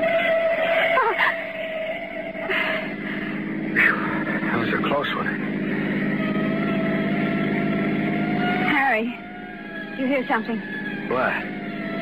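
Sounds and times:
car engine droning: 0.0 - 12.0.

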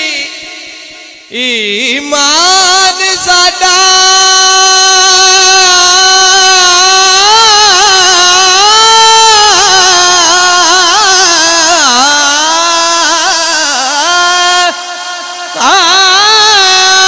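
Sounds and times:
man singing into a microphone: 0.0 - 17.0.

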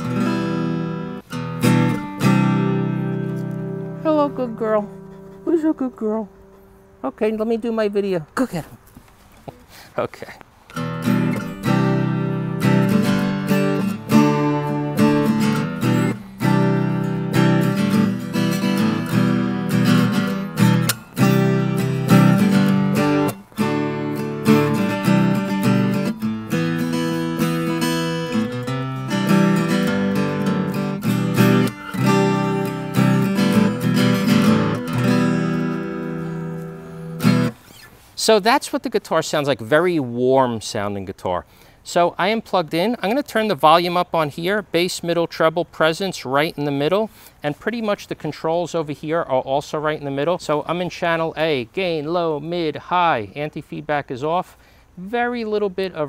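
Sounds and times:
acoustic guitar strummed chords: 0.0 - 7.1, 10.7 - 37.7.

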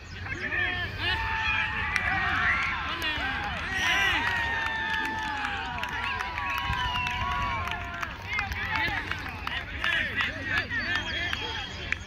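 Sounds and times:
people calling and shouting: 0.0 - 12.0.

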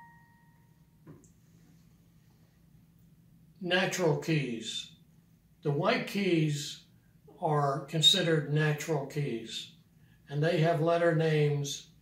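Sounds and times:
digital piano note: 0.0 - 0.6
faint soft knock: 1.0 - 1.2.

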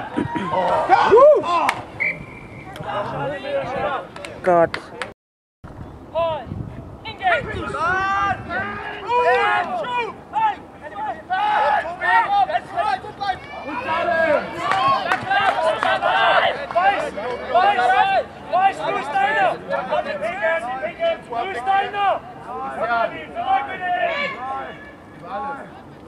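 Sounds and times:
voices shouting: 0.0 - 4.1, 7.1 - 25.8.

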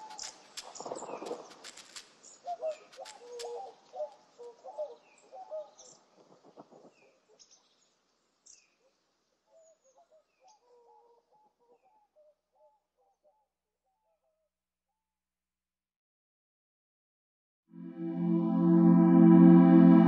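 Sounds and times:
birds chirping softly: 0.0 - 14.5.

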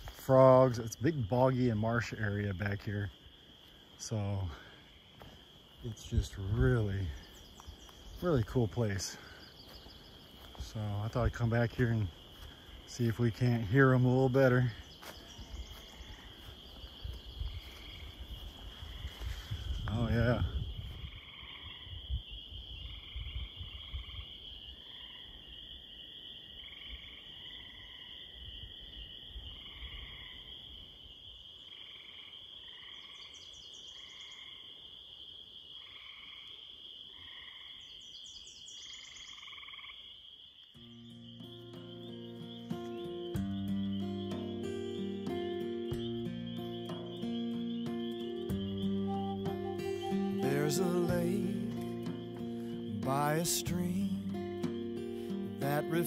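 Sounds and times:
footsteps on trail: 0.0 - 0.3, 3.1 - 21.2
frogs calling in chorus: 0.0 - 56.0
guitar music: 40.8 - 56.0.

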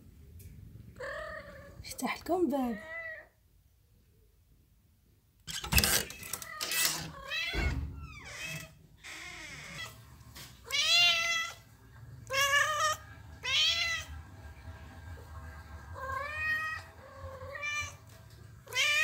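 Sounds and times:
kittens meowing: 6.1 - 10.0.

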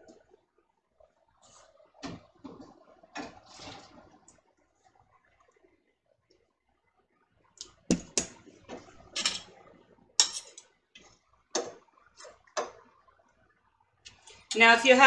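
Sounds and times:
metal utensils clinking on pot: 9.1 - 9.6, 10.2 - 10.7.

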